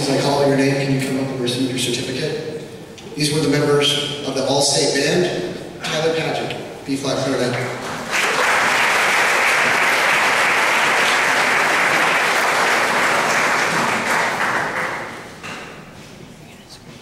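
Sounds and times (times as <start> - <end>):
audience applauding: 7.7 - 15.3.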